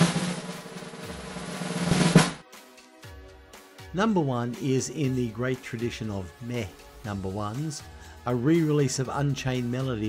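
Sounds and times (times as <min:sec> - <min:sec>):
snare drum roll: 0:00.0 - 0:02.4.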